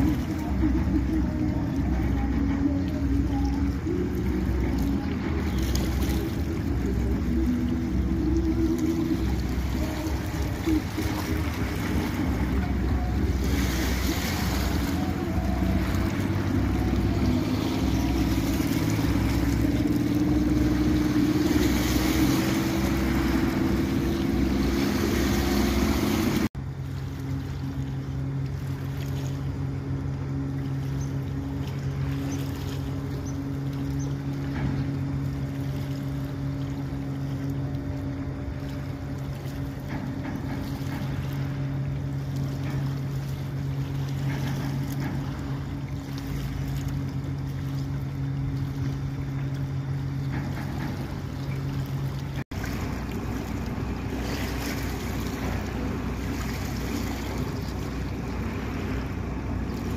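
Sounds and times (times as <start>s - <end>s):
large boat engines droning: 0.0s - 59.9s
speedboat engine passing: 0.0s - 59.9s.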